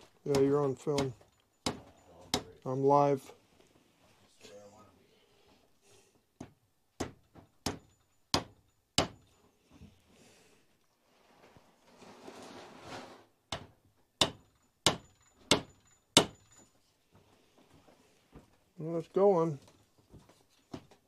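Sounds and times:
small hammer tapping metal: 0.3s - 2.7s, 6.4s - 9.4s, 14.2s - 16.6s
soft handling noise: 3.3s - 4.6s, 19.4s - 21.0s.

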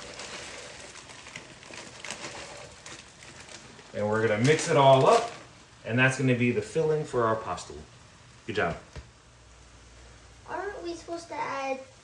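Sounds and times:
frozen peas poured into pan: 0.0s - 5.6s
food sizzling in frying pan: 0.0s - 8.6s.

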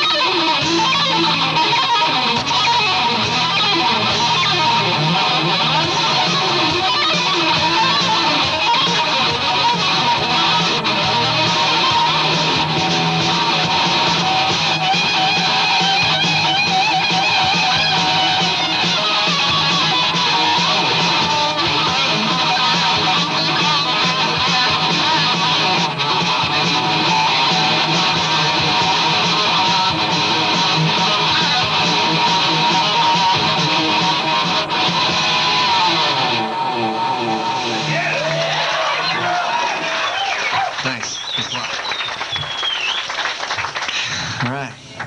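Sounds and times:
electric guitar playing: 0.0s - 41.0s.

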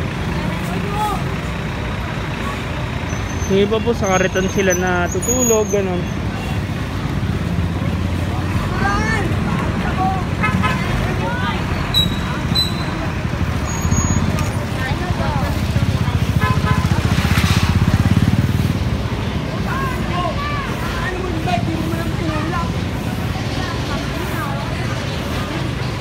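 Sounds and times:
street traffic: 0.0s - 26.0s
motorcycle engine running: 14.2s - 19.2s.

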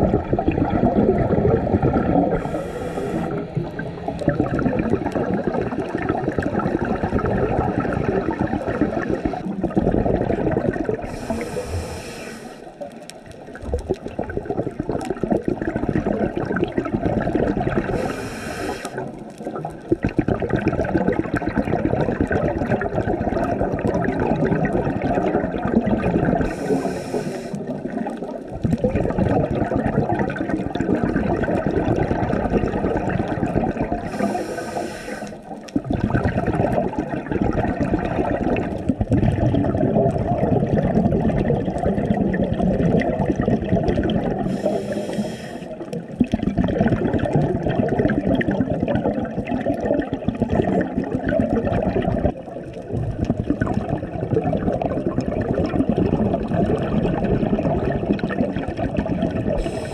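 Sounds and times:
exhaled bubbles gurgling: 0.0s - 59.9s
regulator inhalation hiss: 2.4s - 3.4s, 11.1s - 12.8s, 18.0s - 19.0s, 26.4s - 27.7s, 34.1s - 35.5s, 44.4s - 45.8s, 59.6s - 59.9s.

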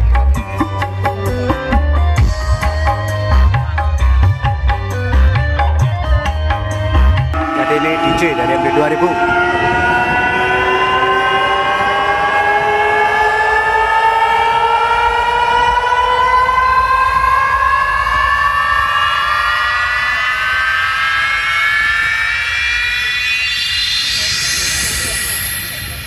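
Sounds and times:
rising sweep tone: 7.2s - 26.0s.

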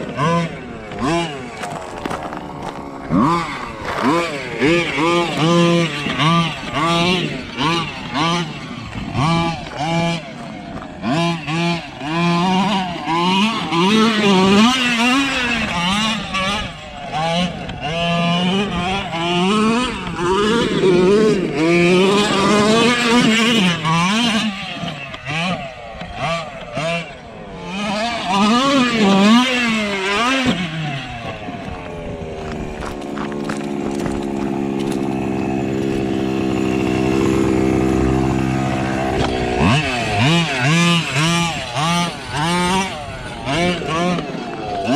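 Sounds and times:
small two-stroke engine revving: 0.0s - 44.9s.

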